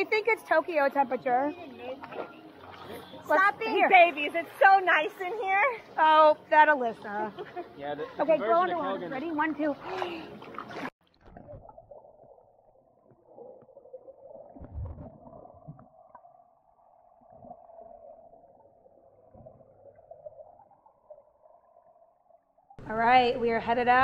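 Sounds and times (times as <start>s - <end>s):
muffled underwater water noise: 9.6s - 22.8s.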